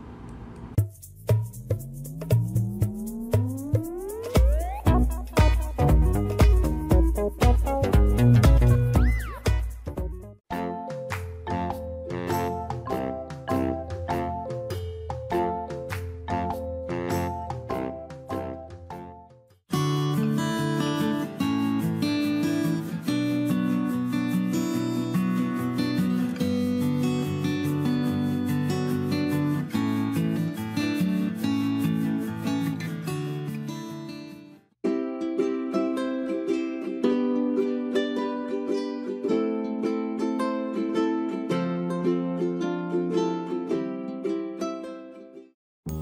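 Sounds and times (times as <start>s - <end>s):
plucked strings tune: 2.1s - 18.6s, 34.8s - 46.0s.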